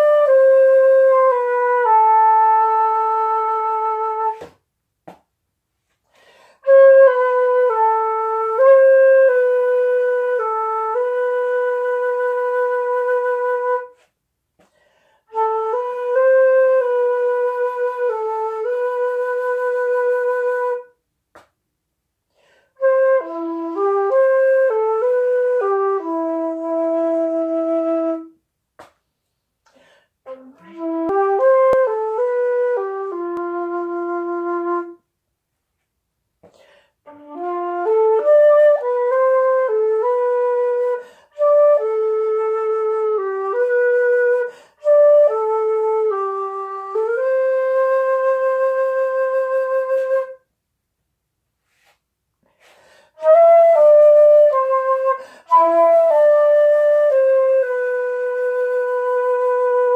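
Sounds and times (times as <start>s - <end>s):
solo flute melody: 0.0s - 4.6s, 6.6s - 14.1s, 15.3s - 21.0s, 22.7s - 28.4s, 30.2s - 35.1s, 37.0s - 50.5s, 52.6s - 59.9s.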